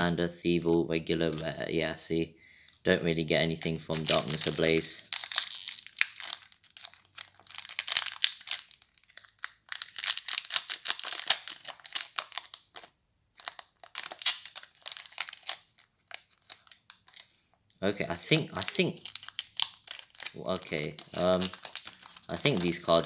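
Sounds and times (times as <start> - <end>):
foil wrapper tearing and crinkling: 3.6 - 17.4, 18.2 - 23.0.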